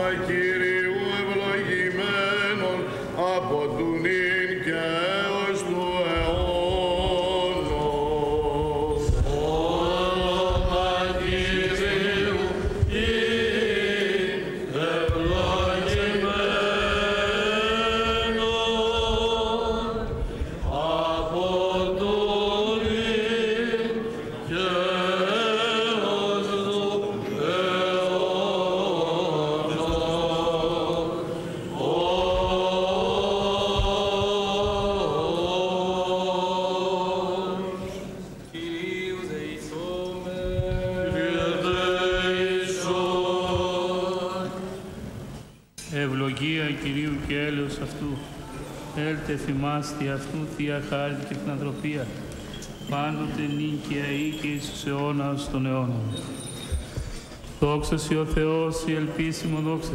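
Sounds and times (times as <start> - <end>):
group chanting: 6.6 - 44.9.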